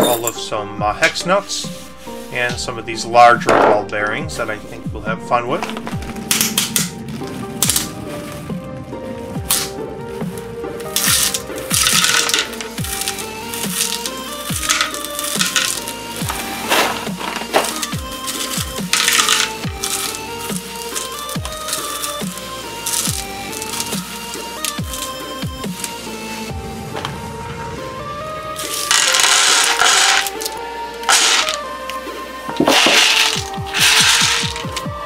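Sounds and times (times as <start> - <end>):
electronic music with kick drum: 0.8 - 35.0.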